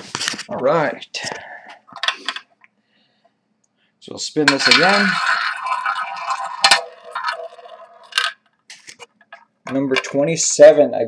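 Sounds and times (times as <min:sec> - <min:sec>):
roulette ball rattling whir: 0:04.5 - 0:08.5.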